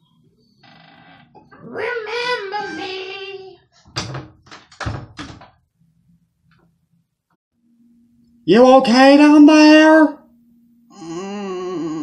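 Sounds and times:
wooden door closing with thud: 0:04.0 - 0:05.6.

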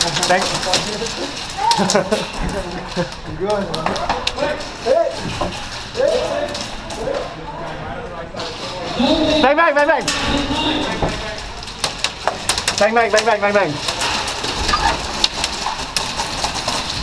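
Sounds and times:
sharp clicks and knocks: 0:09.8 - 0:17.0.

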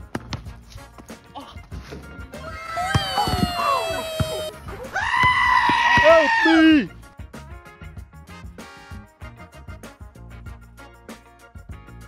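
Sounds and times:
person screaming high-pitched: 0:02.4 - 0:06.9.

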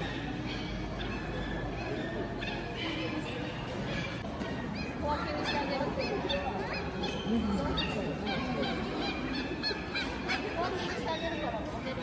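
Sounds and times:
high yelping bird calls: 0:00.0 - 0:11.5.

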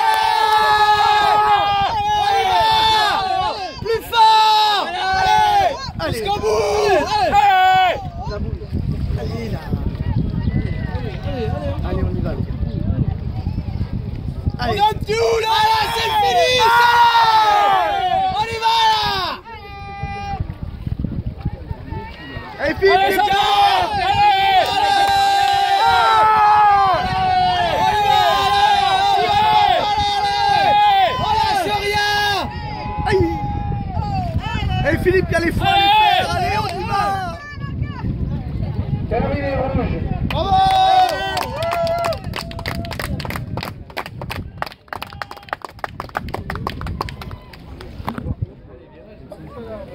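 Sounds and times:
spectators shouting encouragement: 0:00.0 - 0:08.4, 0:14.6 - 0:20.5, 0:21.8 - 0:38.2, 0:39.3 - 0:43.1.

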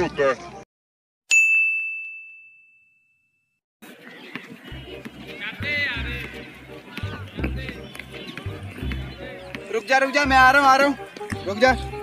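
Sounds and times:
high bell-like ding: 0:01.3 - 0:03.5
outdoor background noise: 0:03.8 - 0:12.0
low background music: 0:04.7 - 0:12.0.

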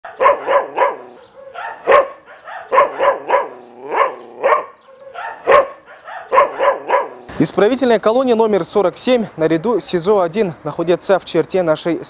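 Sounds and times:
dog barking: 0:00.0 - 0:07.3.

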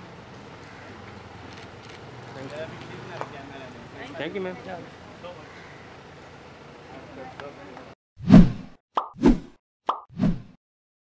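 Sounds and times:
quick swoosh: 0:08.2 - 0:09.6.

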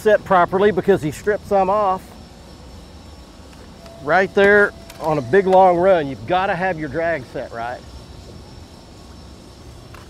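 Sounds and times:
faint high steady tone: 0:00.0 - 0:10.0
low rumble and hiss of water: 0:00.0 - 0:10.0.

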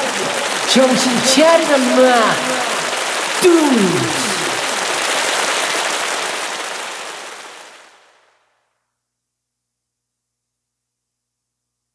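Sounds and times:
audience applause: 0:00.0 - 0:08.2.

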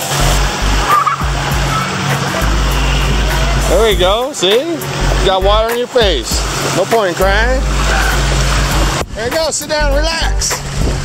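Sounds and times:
water splashing in pool: 0:00.0 - 0:09.5.

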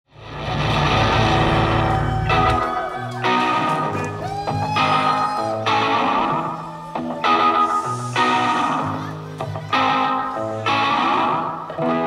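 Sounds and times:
rock band sustained chord: 0:00.1 - 0:04.3.

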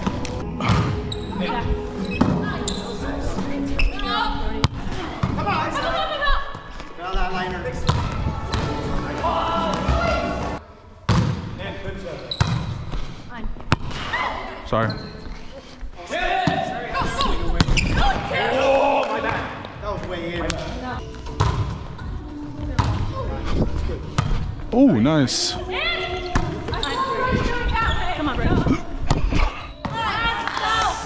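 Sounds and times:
players' voices and chatter: 0:00.0 - 0:31.0
volleyball striking floor: 0:07.8 - 0:09.0, 0:11.1 - 0:11.6, 0:12.4 - 0:13.0, 0:13.7 - 0:14.1, 0:20.4 - 0:21.9, 0:22.6 - 0:23.2, 0:24.2 - 0:24.5, 0:26.2 - 0:26.8.

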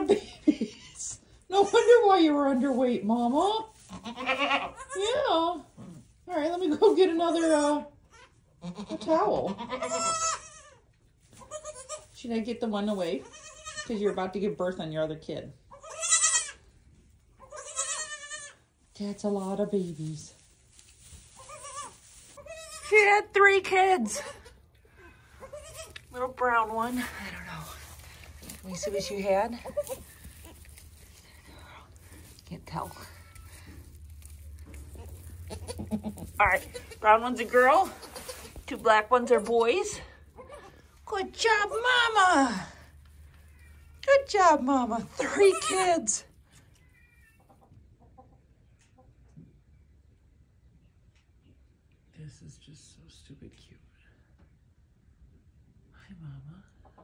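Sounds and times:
goat bleating: 0:03.8 - 0:05.2, 0:07.3 - 0:12.1, 0:13.2 - 0:13.9, 0:15.7 - 0:16.6, 0:17.4 - 0:18.6, 0:21.4 - 0:23.0, 0:24.1 - 0:30.8, 0:32.8 - 0:38.6, 0:39.4 - 0:40.8, 0:42.1 - 0:44.0, 0:45.1 - 0:46.2.

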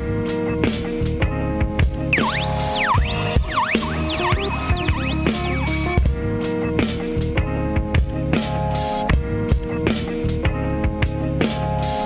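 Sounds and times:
sliding sampled tone: 0:02.1 - 0:06.0
hip hop beat: 0:02.1 - 0:06.4.

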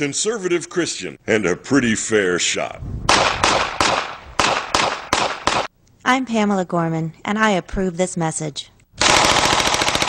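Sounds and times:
pistol shots echoing: 0:03.1 - 0:05.7.

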